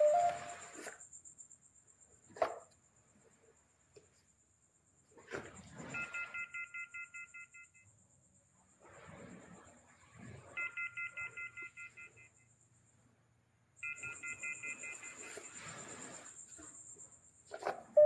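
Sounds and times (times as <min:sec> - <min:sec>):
electronic beeping pulses: 0:00.0 - 0:00.8, 0:13.8 - 0:16.3.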